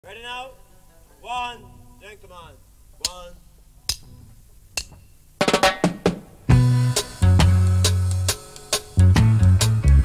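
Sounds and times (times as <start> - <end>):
snare drum fill: 5.4 - 8.0.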